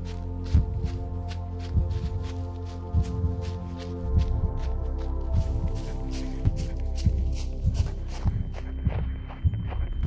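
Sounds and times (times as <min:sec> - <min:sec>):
running footsteps in dry leaves: 0:00.0 - 0:10.0
steady low hum: 0:00.0 - 0:10.0.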